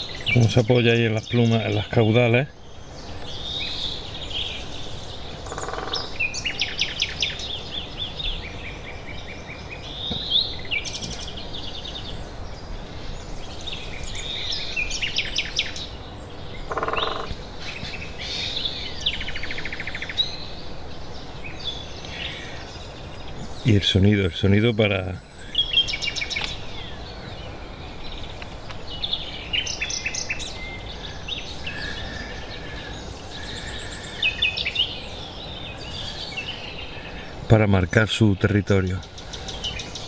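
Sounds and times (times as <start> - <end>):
songbirds chirping and trilling: 0.0 - 40.0
woodpecker drumming on tree: 5.3 - 6.3, 16.6 - 17.5.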